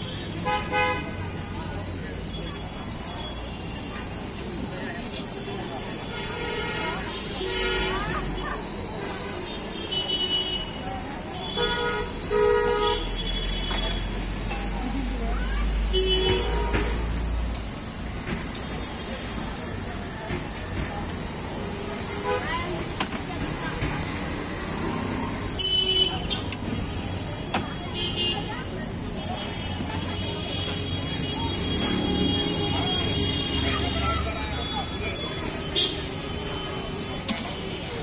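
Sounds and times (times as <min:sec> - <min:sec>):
road traffic: 0:00.0 - 0:38.0.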